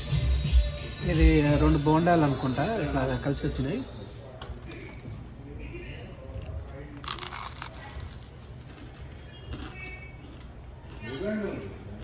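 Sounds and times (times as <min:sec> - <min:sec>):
faint background voices: 0:00.9 - 0:12.0
crunch of biting fried food: 0:06.3 - 0:12.0.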